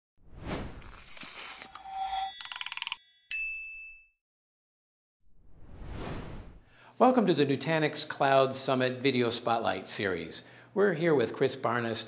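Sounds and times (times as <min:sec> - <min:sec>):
bright ding: 0:01.6 - 0:04.2
fluttering run of clicks: 0:02.4 - 0:03.0.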